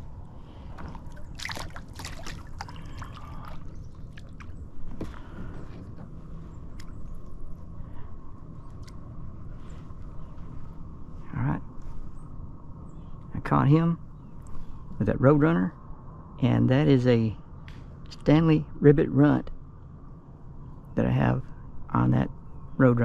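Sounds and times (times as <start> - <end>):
water sloshing and dripping: 0.7 - 7.5.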